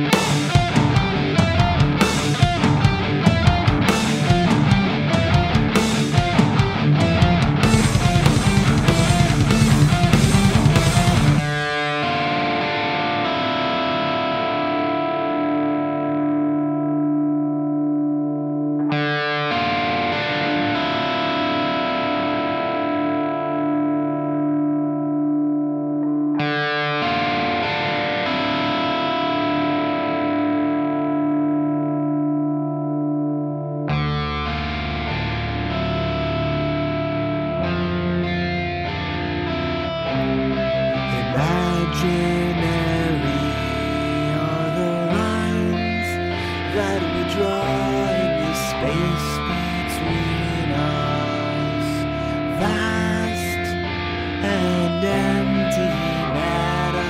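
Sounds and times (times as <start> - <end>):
low bass: 0.0 - 11.6
full band playing: 0.0 - 11.7
electric guitar chords ringing: 0.0 - 57.0.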